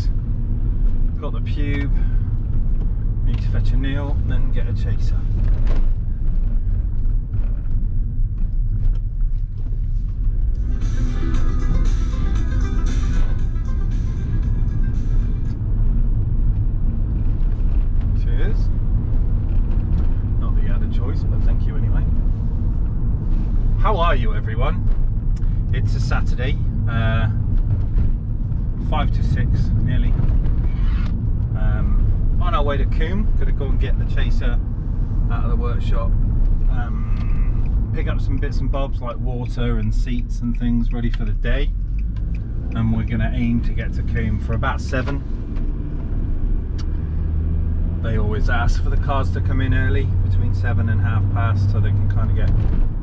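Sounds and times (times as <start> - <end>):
car engine and road rumble: 0.0 - 53.0.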